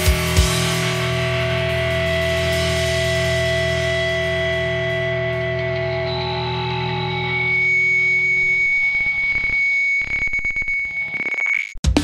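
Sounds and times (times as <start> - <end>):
high-pitched whine: 1.2 - 11.8.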